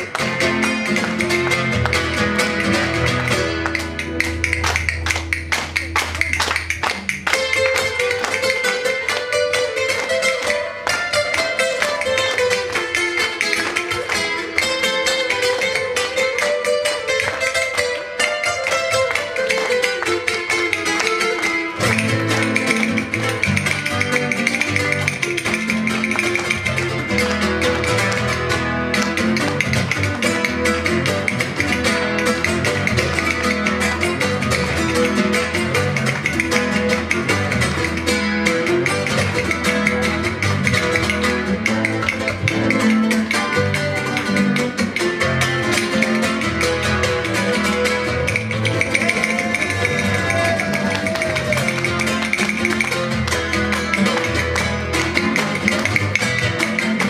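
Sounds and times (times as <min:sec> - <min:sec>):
flamenco acoustic guitar: 0:00.0 - 0:57.0.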